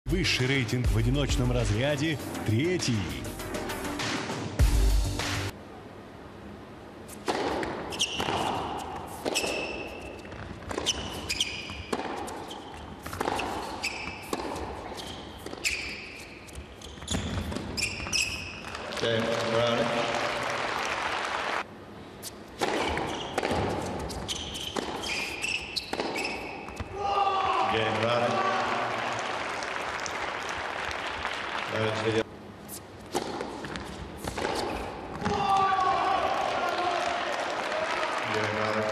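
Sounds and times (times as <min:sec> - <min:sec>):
tennis ball hit and bouncing: 0:07.1 - 0:18.3, 0:22.5 - 0:26.9, 0:33.0 - 0:35.6
shoes squeaking: 0:07.1 - 0:18.8, 0:22.2 - 0:27.0, 0:32.6 - 0:35.7.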